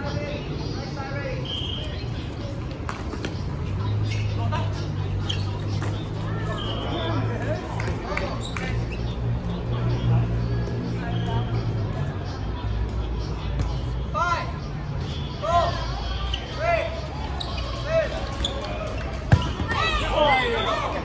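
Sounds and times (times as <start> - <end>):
sneakers squeaking: 1.4 - 11.6, 15.0 - 21.0
players calling out: 14.1 - 21.0.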